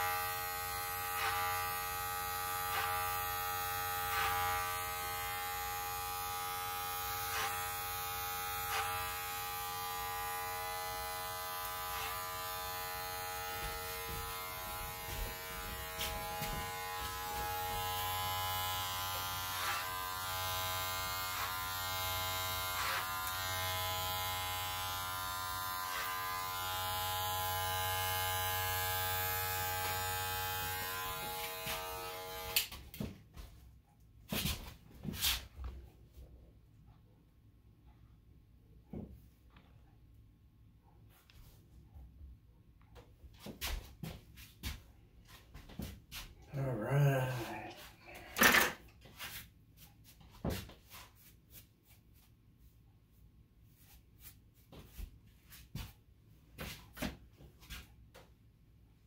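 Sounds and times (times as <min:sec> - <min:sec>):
electric hair clipper buzzing: 0:00.0 - 0:33.1, 0:46.8 - 0:48.8.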